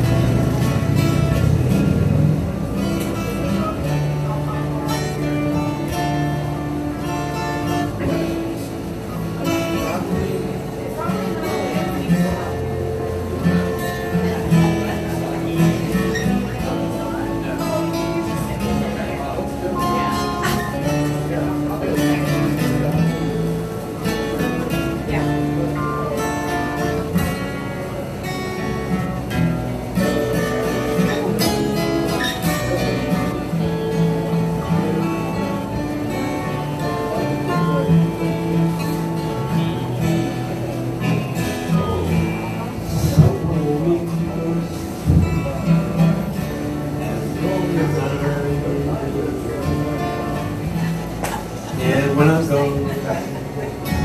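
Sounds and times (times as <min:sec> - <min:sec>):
acoustic guitar playing: 0:00.0 - 0:54.0.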